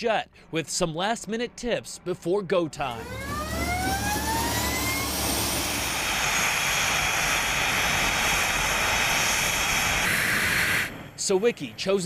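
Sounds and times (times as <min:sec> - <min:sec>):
jet engines whining and roaring: 0:02.0 - 0:12.0.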